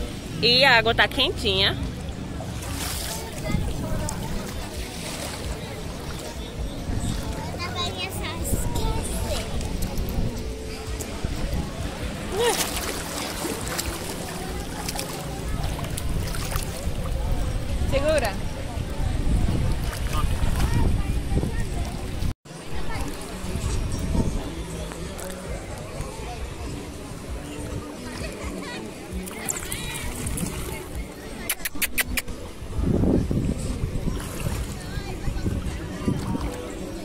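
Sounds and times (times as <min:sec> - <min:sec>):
wind buffeting microphone: 0:00.0 - 0:24.8, 0:32.3 - 0:37.0
faint voices: 0:00.0 - 0:37.0
music: 0:00.0 - 0:37.0
sea water sloshing: 0:01.5 - 0:07.5, 0:10.8 - 0:18.2
shallow sea water washing: 0:11.8 - 0:17.5.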